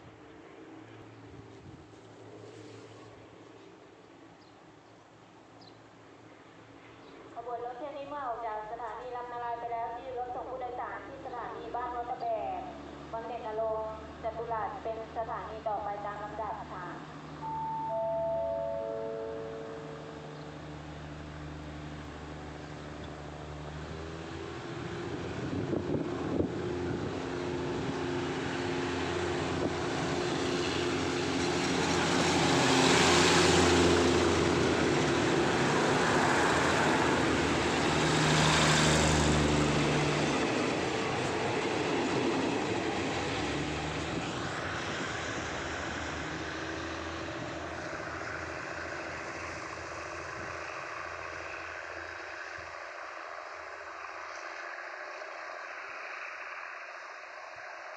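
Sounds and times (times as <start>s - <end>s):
diesel railcar engines running: 0.0s - 57.9s.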